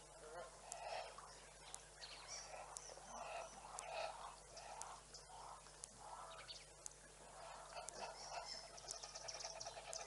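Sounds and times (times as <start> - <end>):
small birds chirping: 0.0 - 10.0.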